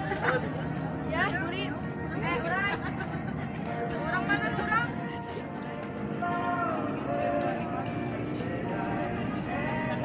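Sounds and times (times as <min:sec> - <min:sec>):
background music: 0:00.0 - 0:10.0
people talking: 0:03.9 - 0:05.0.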